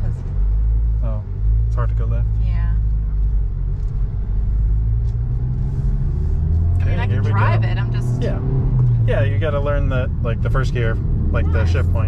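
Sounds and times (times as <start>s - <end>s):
car engine drone in cabin: 0.0s - 12.0s.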